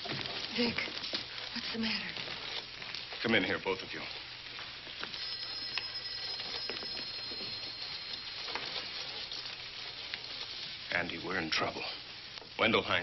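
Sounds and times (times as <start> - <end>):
film soundtrack hiss and crackle: 0.0 - 13.0.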